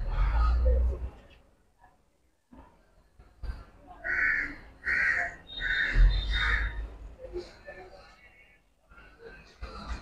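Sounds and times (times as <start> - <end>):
crow cawing: 4.0 - 6.8.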